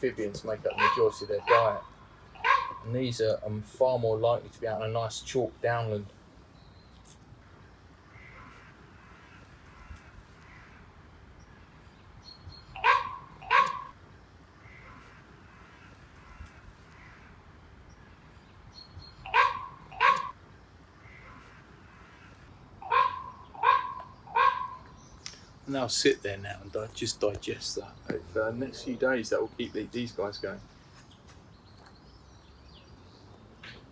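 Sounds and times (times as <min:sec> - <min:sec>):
bird cawing: 0:00.7 - 0:03.0, 0:08.0 - 0:11.7, 0:12.5 - 0:14.0, 0:14.6 - 0:18.5, 0:19.2 - 0:20.4, 0:21.0 - 0:25.1.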